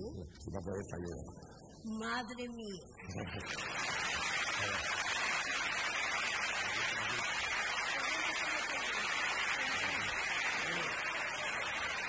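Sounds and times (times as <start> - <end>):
audience applauding: 3.2 - 12.0.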